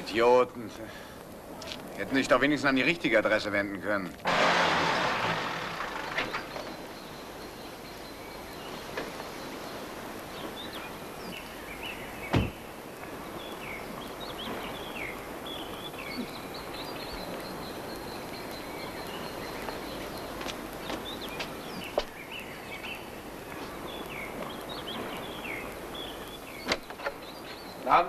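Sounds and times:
birds chirping: 0.0s - 28.0s
car door shutting: 12.3s - 12.6s.

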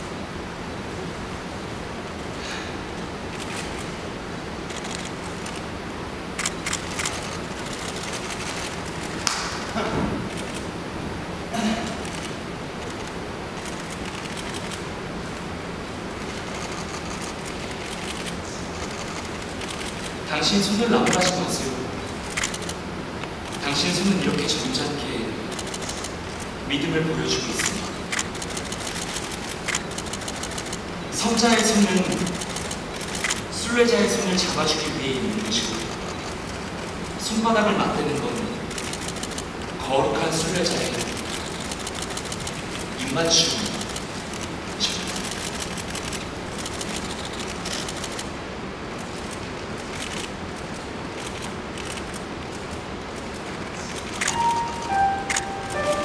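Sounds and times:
steady background hiss: 0.0s - 56.0s
camera shutters clicking: 6.4s - 9.7s, 10.3s - 10.7s, 12.0s - 14.8s, 16.2s - 20.2s, 21.0s - 21.4s, 22.2s - 22.8s, 25.5s - 26.5s, 27.6s - 33.5s, 38.7s - 39.5s, 40.4s - 48.3s, 49.1s - 52.2s, 53.9s - 56.0s.

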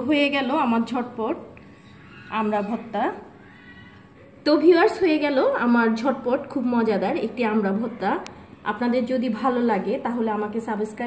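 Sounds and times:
woman speaking: 0.0s - 1.6s, 2.3s - 3.4s, 4.4s - 11.0s.

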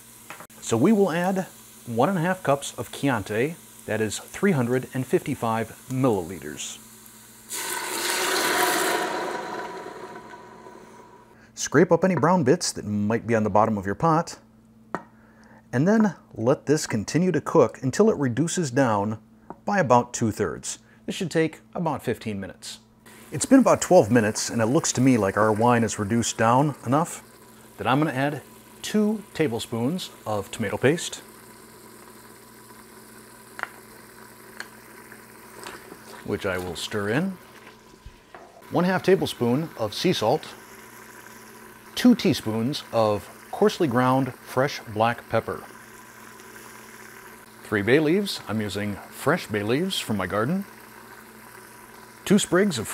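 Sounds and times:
wine sizzling in hot pot: 0.0s - 11.4s, 23.0s - 52.9s
faint steady hum: 0.0s - 52.9s.

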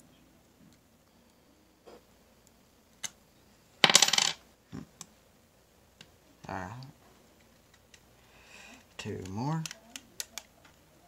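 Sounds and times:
metal coins clattering: 3.8s - 4.4s.

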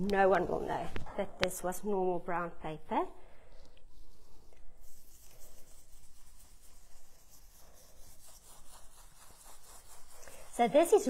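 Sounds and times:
brush bristles stroking paper: 3.4s - 11.0s.

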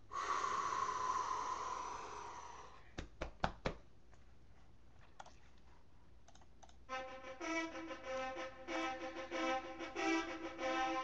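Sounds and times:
person breathy exhale: 0.0s - 2.9s.

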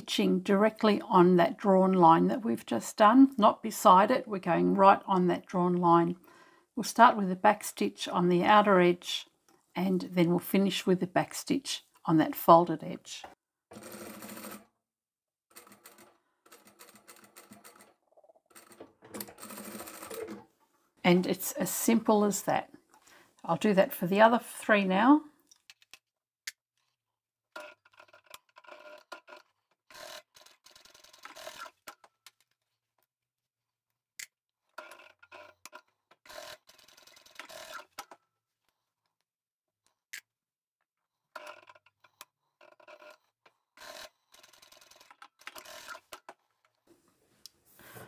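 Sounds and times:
sewing machine stitching: 13.7s - 14.7s, 15.5s - 20.5s, 27.6s - 32.0s, 34.8s - 38.2s, 41.3s - 46.3s.

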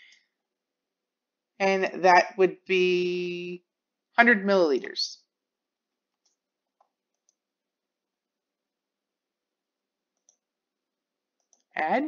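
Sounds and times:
computer mouse clicks: 6.1s - 7.4s, 10.1s - 10.5s, 11.4s - 11.8s.

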